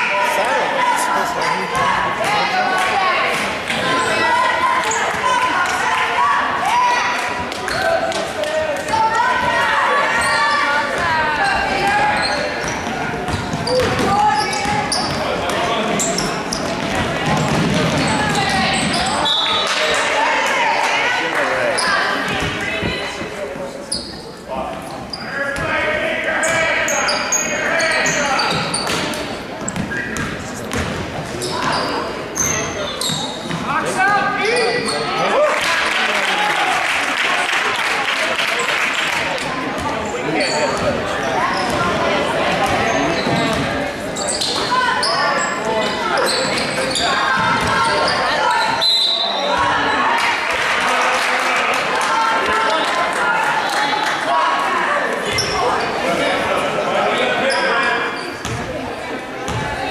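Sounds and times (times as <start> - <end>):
echoing voices: 0.0 - 59.9
sneaker squeaks: 10.0 - 19.9, 21.7 - 23.0, 23.8 - 24.4, 25.0 - 25.7, 26.4 - 35.2, 39.8 - 50.0, 55.2 - 56.2, 57.4 - 58.8.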